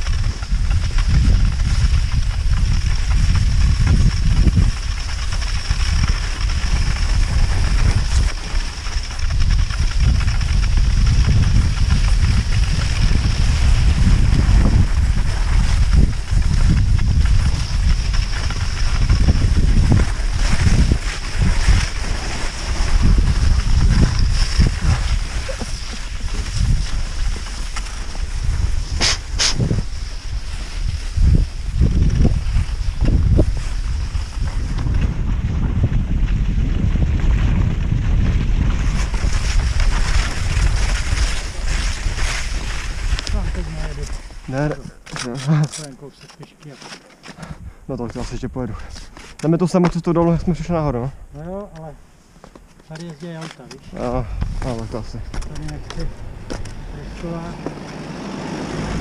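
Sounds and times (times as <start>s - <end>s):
wind buffeting microphone: 0.0s - 46.6s, 47.3s - 59.0s.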